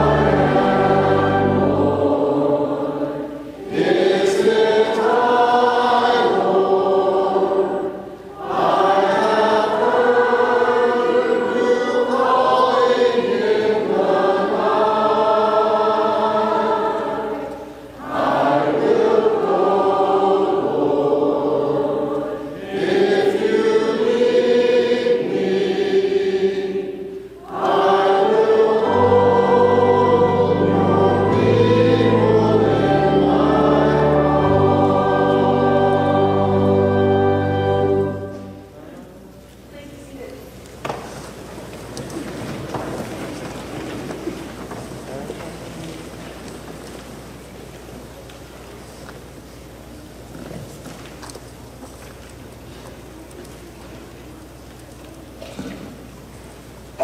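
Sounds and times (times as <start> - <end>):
low sustained notes: 0.0 - 3.8, 28.2 - 39.1
church choir singing: 0.0 - 39.4.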